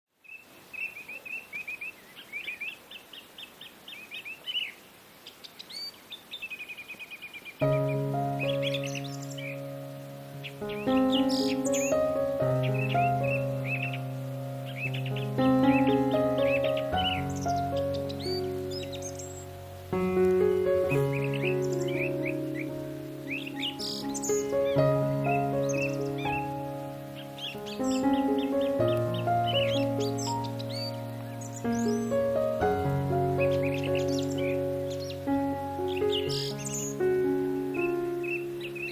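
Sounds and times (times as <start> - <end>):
small birds chirping: 0.1 - 38.9
instrumental music of held notes: 7.6 - 38.9.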